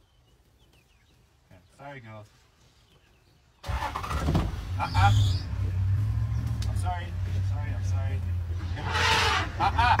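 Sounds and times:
vehicle engine running: 0:03.7 - 0:10.0.

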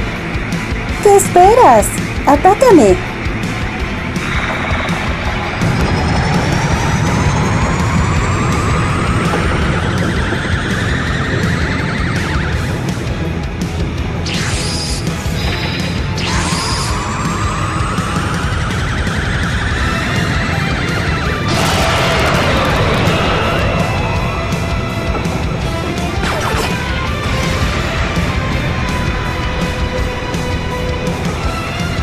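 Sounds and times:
dramatic background music: 0:00.0 - 0:32.0
rising charge-up whine: 0:04.2 - 0:12.9, 0:16.1 - 0:28.6.

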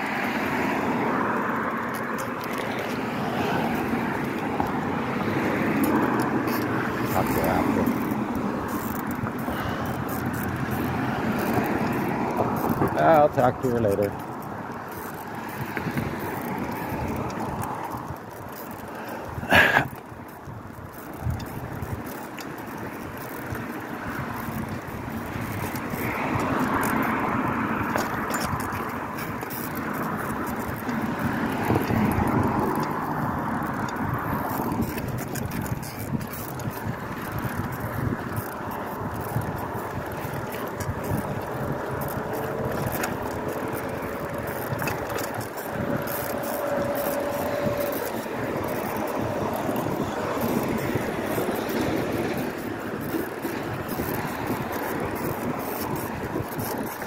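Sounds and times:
bicycle knocks and rattles: 0:00.0 - 0:57.0
wind and tyre noise: 0:00.0 - 0:57.0.

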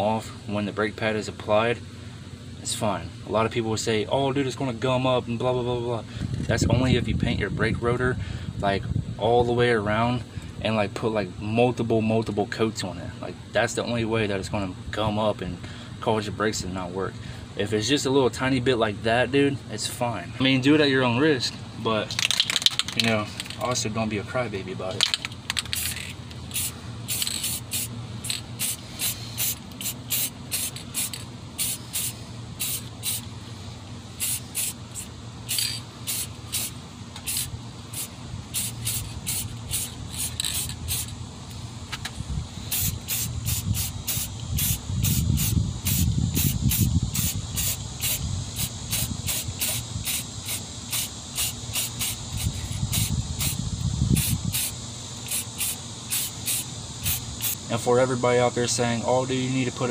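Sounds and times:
spray can hissing in pulses: 0:25.7 - 0:33.3, 0:34.2 - 0:41.1, 0:42.7 - 0:53.6, 0:54.2 - 0:57.6.

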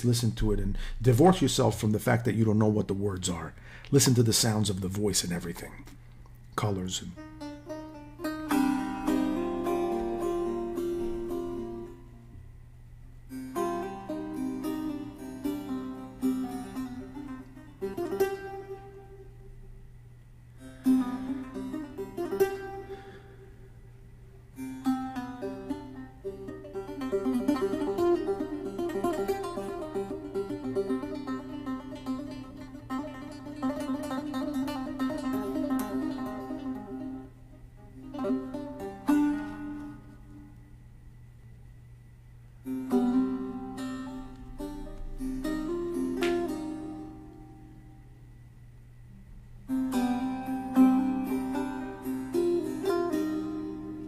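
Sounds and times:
plucked lute melody: 0:07.1 - 0:12.4, 0:13.3 - 0:19.6, 0:20.5 - 0:23.8, 0:24.5 - 0:40.6, 0:42.6 - 0:47.9, 0:49.6 - 0:54.0.

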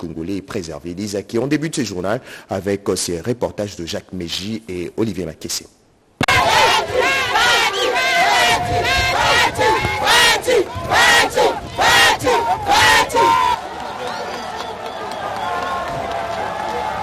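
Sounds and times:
crowd cheering and shouting: 0:06.2 - 0:17.0.

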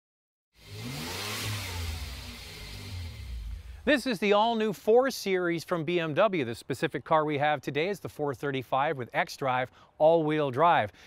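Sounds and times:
car driving past: 0:00.6 - 0:03.9
car engine starting: 0:00.6 - 0:04.2.

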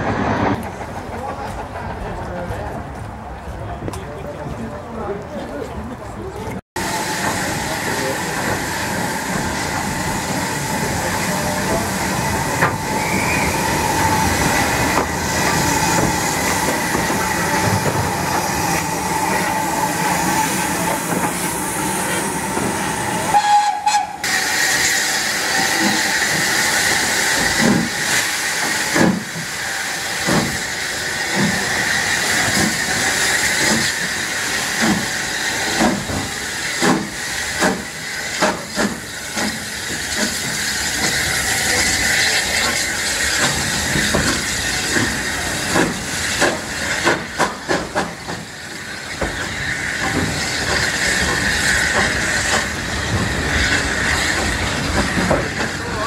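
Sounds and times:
steam hissing: 0:06.8 - 0:56.0
steam train chuffing beats: 0:06.8 - 0:56.0
high whistle-like tone: 0:12.9 - 0:13.8.

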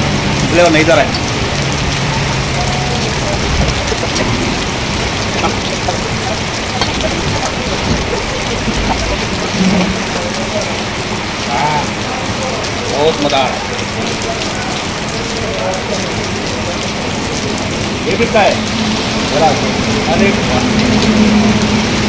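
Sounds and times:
heavy rain falling: 0:00.0 - 0:22.0.

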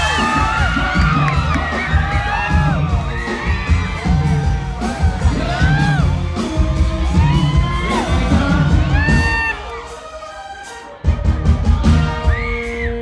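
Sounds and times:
crowd whooping: 0:00.0 - 0:13.0
live band music: 0:00.0 - 0:13.0.

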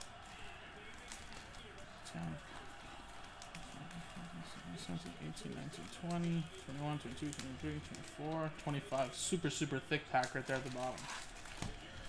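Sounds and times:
foil packs crinkling: 0:00.0 - 0:12.0.

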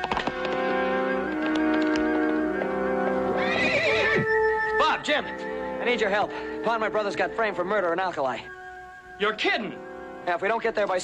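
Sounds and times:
background score of held notes: 0:00.0 - 0:11.0
horse whinnying: 0:03.2 - 0:04.8.

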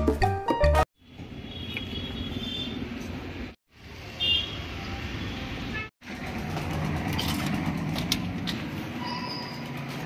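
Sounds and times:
street traffic noise: 0:01.0 - 0:10.0.

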